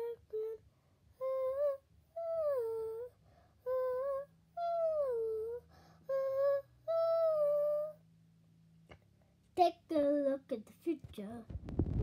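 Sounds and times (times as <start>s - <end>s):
woman humming a melody: 0.0s - 0.6s, 1.2s - 8.0s.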